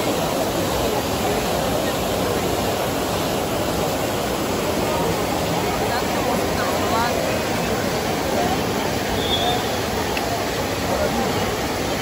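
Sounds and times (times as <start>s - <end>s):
crowd chatter: 0.0s - 12.0s
fountain water splashing: 0.0s - 12.0s.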